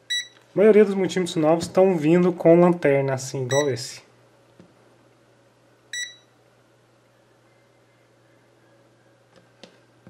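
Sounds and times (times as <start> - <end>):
short high beep: 6.0 - 6.3.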